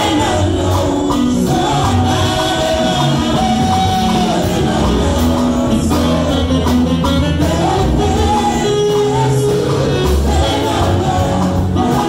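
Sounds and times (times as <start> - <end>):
choir singing in harmony: 0.0 - 12.0
live instrumental accompaniment: 0.0 - 12.0.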